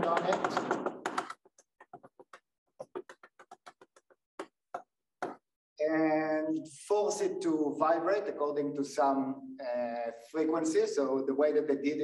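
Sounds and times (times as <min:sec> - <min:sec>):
chalk tapping on blackboard: 0:00.0 - 0:05.4.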